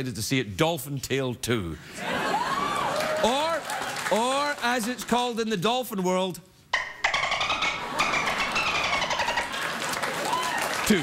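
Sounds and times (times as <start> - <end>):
man imitating dolphin squeal: 6.8 - 9.5.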